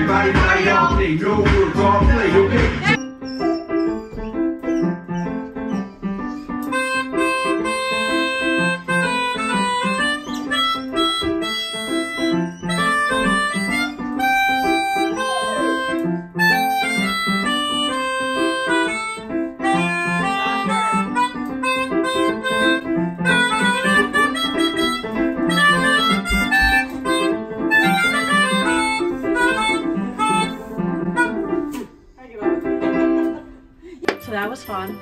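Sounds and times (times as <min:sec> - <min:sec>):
melodica melody: 0:03.4 - 0:31.8
digital keyboard chord pattern: 0:03.8 - 0:31.8.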